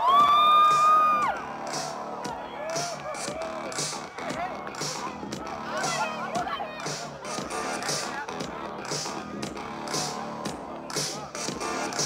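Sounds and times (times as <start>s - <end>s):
electronic dance music: 0.0s - 12.0s.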